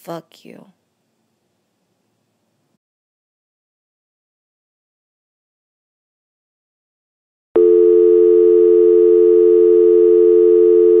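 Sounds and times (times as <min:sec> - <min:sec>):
telephone dial tone: 0:07.6 - 0:11.0.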